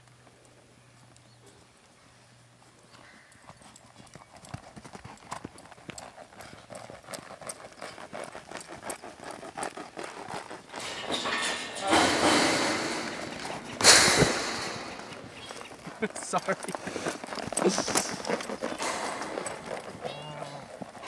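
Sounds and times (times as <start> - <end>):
hoofbeats on soft dirt: 0.0 - 21.0.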